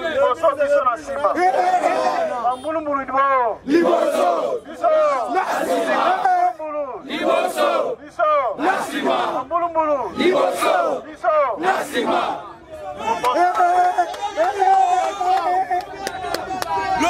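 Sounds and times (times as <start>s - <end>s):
crowd of men shouting: 0.0s - 17.0s.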